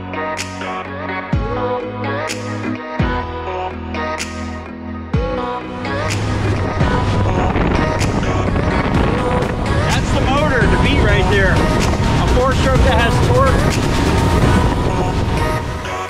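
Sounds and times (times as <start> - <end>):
background music: 0.0 - 16.0
wind and water rushing: 5.8 - 16.0.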